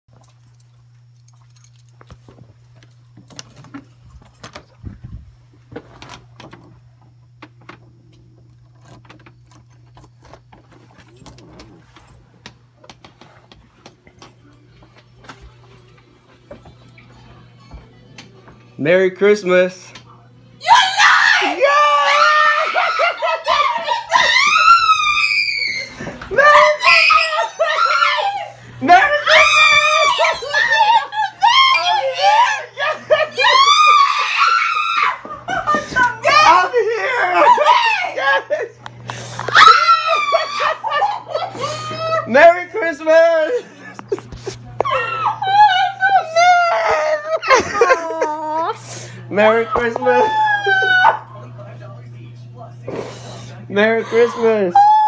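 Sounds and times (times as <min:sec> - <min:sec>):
woman screaming: 0:20.6 - 0:38.7, 0:39.5 - 0:42.5, 0:44.8 - 0:48.8, 0:49.7 - 0:51.3, 0:54.0 - 0:55.0.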